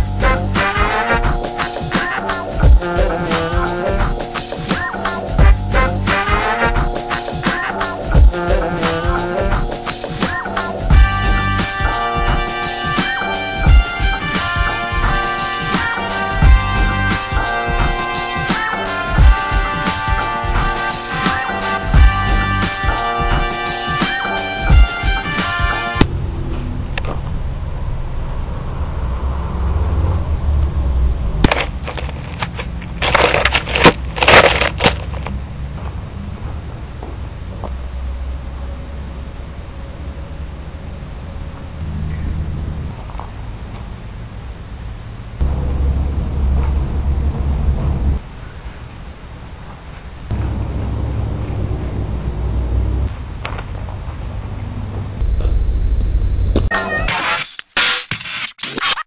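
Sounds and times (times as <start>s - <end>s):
turntable scratching: 56.4s - 59.0s.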